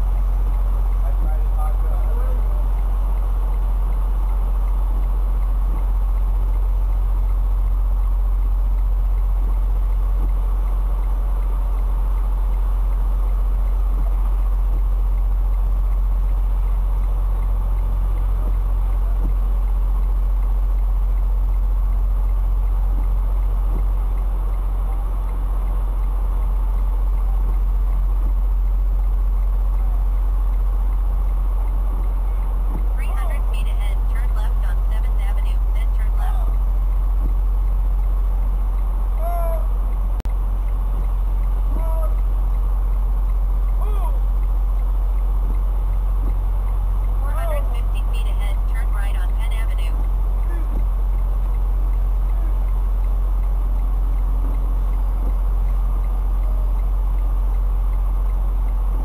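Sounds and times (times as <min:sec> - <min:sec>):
diesel truck engine droning: 0:00.0 - 0:59.0.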